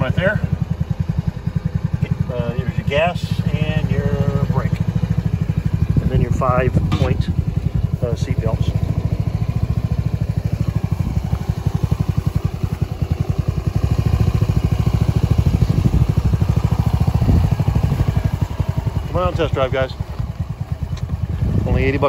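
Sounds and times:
go-kart engine idling: 0.0 - 22.0.

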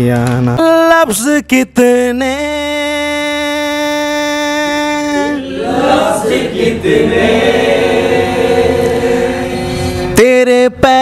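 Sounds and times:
man singing into a microphone: 0.3 - 5.4, 10.1 - 11.0
several voices singing: 5.2 - 10.2.

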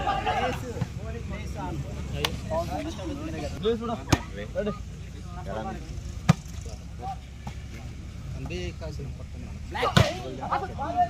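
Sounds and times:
players shouting: 0.0 - 4.9.

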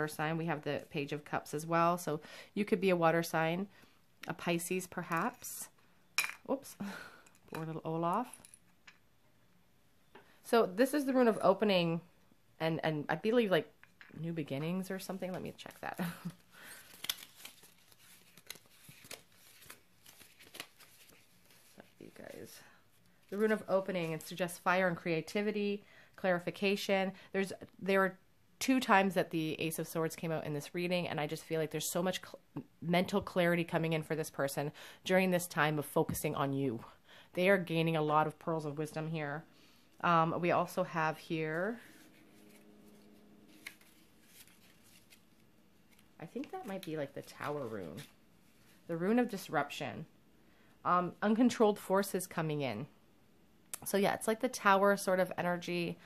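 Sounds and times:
paper rustling: 15.0 - 22.5, 41.7 - 48.9.

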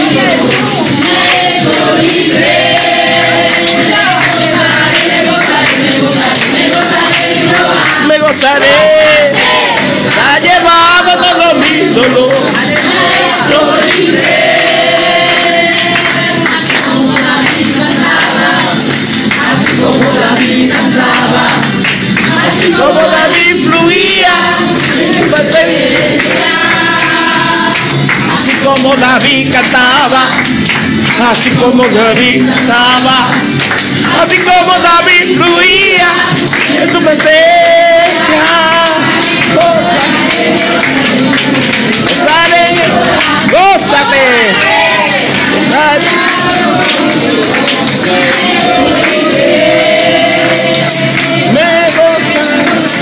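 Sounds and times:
congregation singing: 0.0 - 53.0
musical accompaniment: 0.0 - 53.0.

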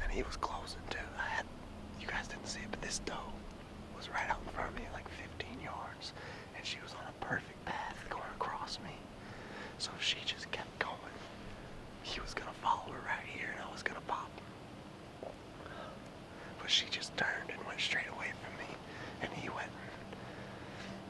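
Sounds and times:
man whispering: 0.0 - 11.4, 12.0 - 14.4, 15.7 - 20.3.

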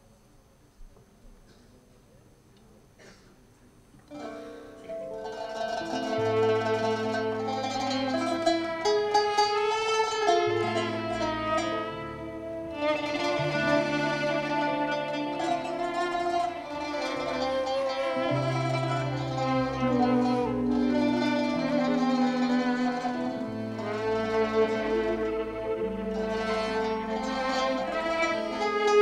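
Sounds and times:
plucked strings: 4.1 - 29.0
violins: 4.1 - 29.0
ensemble music: 4.2 - 29.0
double bass: 10.0 - 29.0.

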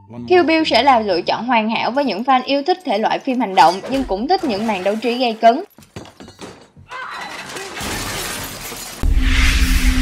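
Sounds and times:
glass shattering: 5.8 - 9.2.

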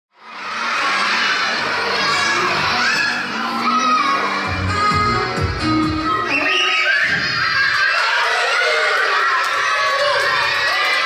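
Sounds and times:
children shouting and cheering: 0.2 - 11.0.

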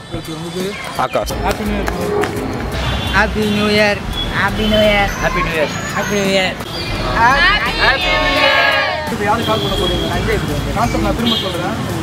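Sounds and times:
people talking: 0.1 - 2.0
music with pulsing bass beat: 1.2 - 5.5.

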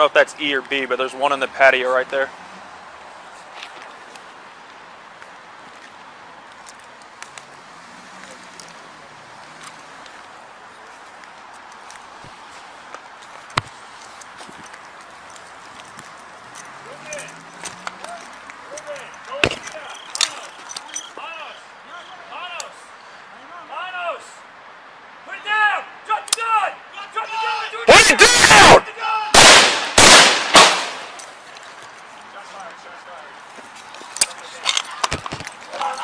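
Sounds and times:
voices calling out: 0.0 - 36.0.

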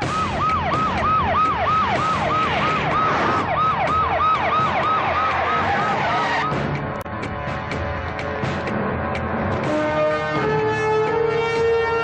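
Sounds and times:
vehicle siren wailing: 0.0 - 6.6, 9.7 - 12.0
cars driving: 0.0 - 12.0.

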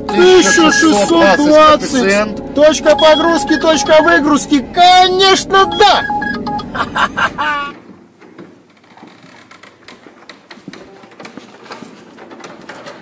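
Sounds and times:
footsteps on concrete floor: 9.9 - 12.2.

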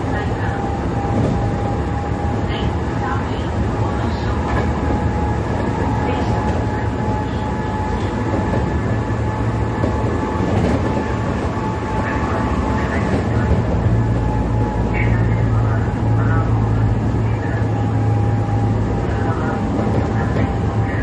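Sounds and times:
train wheels rumbling: 0.0 - 21.0.

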